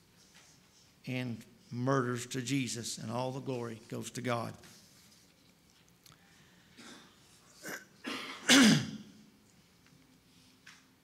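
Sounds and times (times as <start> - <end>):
man clearing his throat: 6.8 - 9.2.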